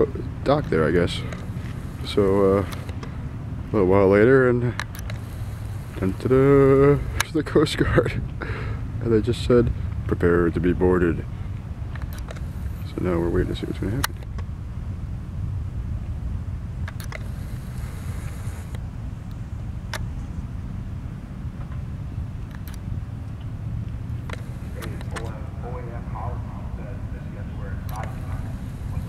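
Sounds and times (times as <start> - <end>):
outboard motors rumbling: 0.0 - 15.4, 16.4 - 20.0, 23.0 - 29.0
faint voices: 24.4 - 29.0.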